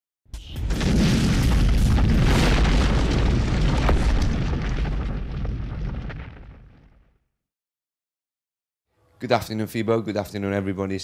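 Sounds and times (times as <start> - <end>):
scattered crackles: 0.4 - 7.2
deep boom with low rumble: 0.6 - 7.0.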